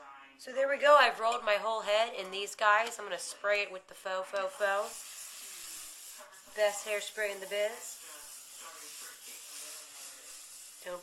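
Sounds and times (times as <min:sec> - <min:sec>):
aerosol spray hissing: 0:04.4 - 0:11.0.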